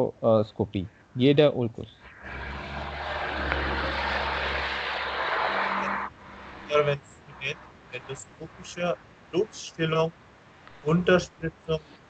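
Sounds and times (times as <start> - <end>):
low hum: 1.8 - 12.0
steady rushing noise: 2.1 - 9.4.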